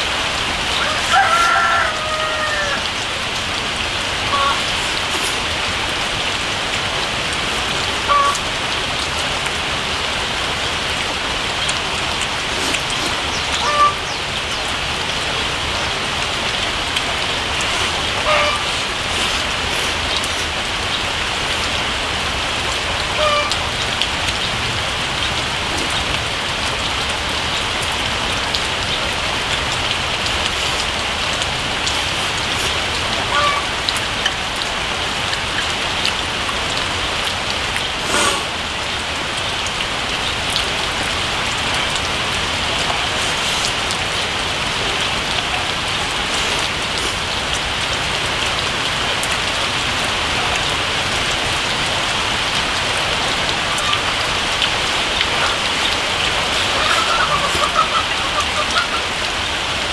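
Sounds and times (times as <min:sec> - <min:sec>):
steady rain falling: 0:00.0 - 0:59.9.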